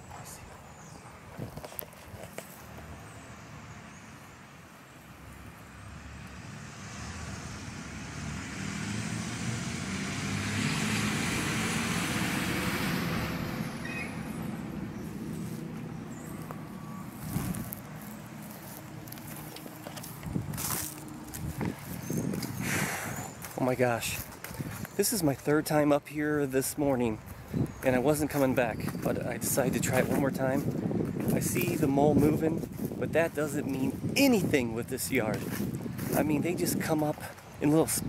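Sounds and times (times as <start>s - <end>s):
vehicle passing by: 2.6s - 38.0s.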